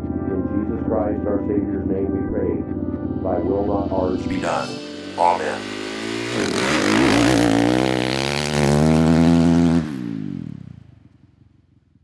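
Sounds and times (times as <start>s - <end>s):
motocross bike engines revving: 3.6s - 10.3s.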